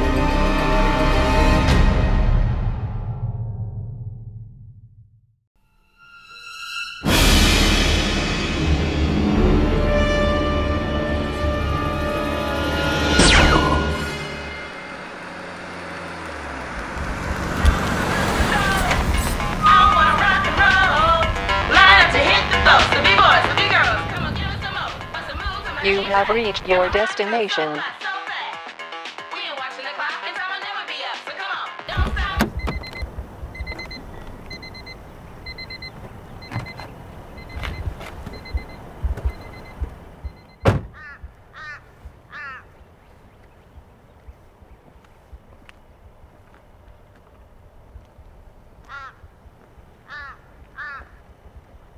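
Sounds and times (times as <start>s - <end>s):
car driving on asphalt: 13.7s - 26.8s, 31.9s - 51.9s
car stereo music: 18.1s - 28.1s, 31.8s - 36.9s
car door shutting: 31.9s - 34.4s, 35.9s - 41.0s
car door warning chime: 31.9s - 40.8s
thump: 40.6s - 41.0s
crow cawing: 40.9s - 42.8s, 48.8s - 49.3s, 50.0s - 51.3s.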